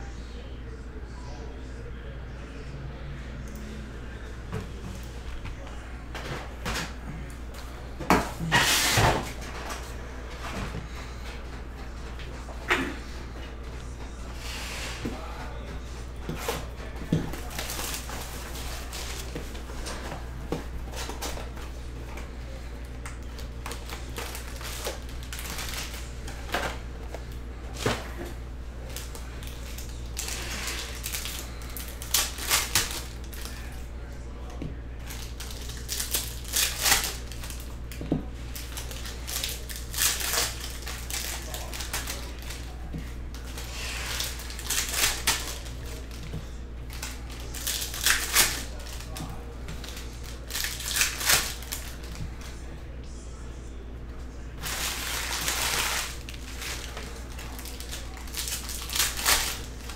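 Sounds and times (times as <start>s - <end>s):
steady low hum: 0.0s - 59.9s
foil wrappers crinkling and tearing: 16.2s - 33.9s, 35.0s - 52.6s, 54.6s - 59.9s.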